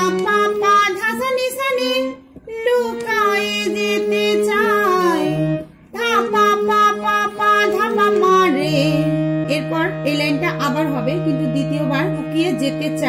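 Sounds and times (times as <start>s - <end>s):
harmonium melody: 0.0s - 13.0s
woman singing: 0.0s - 13.0s.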